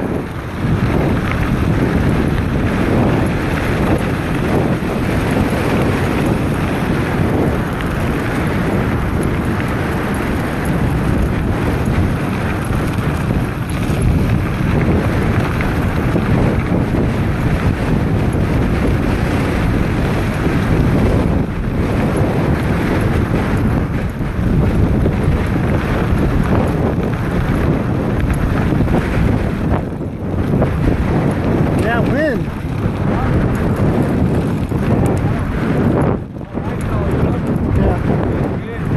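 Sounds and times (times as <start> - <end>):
tyres rumbling over gravel: 0.0 - 38.9
wind noise on microphone: 0.0 - 38.9.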